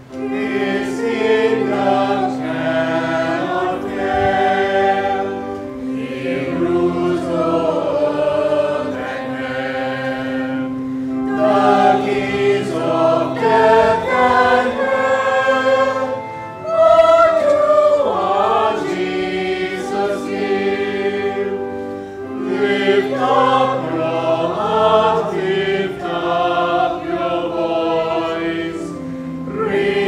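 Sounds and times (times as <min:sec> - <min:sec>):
congregation singing a hymn: 0:00.0 - 0:30.0
low sustained accompaniment: 0:00.0 - 0:30.0.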